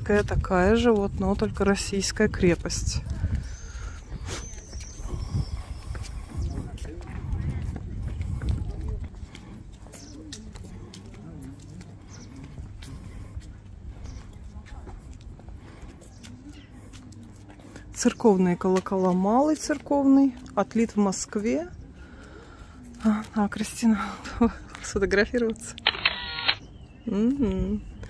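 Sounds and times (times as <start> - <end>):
wind buffeting microphone: 0.0 - 11.2
faint voices talking: 0.0 - 28.0.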